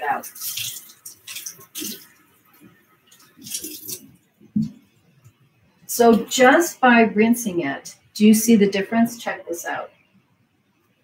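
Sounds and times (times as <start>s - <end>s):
tap water splashing in a sink: 0.0s - 4.8s.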